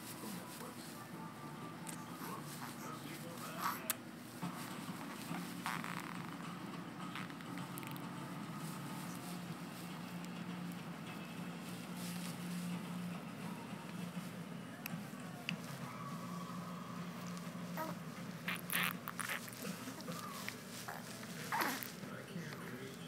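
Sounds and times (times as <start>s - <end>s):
steady low hum: 6.3s - 23.0s.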